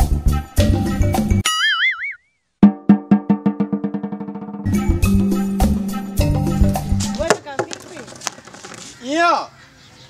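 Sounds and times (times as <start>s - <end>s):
drum-backed music: 2.6s - 7.4s
wood-block knocks: 7.1s - 8.9s.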